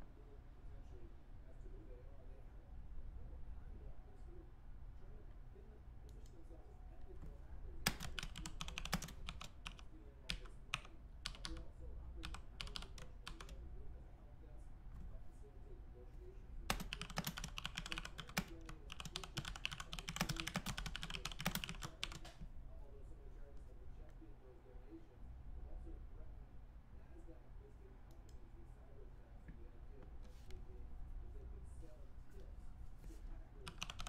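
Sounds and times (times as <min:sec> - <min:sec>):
low steady hum: 0:00.0 - 0:34.0
typing on computer keyboard: 0:07.8 - 0:11.6, 0:12.2 - 0:13.5, 0:16.7 - 0:22.4, 0:33.6 - 0:34.0.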